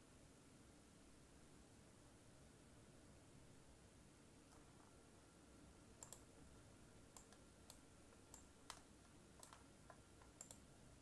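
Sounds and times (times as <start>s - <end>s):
faint sharp clicks: 6.0s - 6.3s, 7.1s - 10.7s.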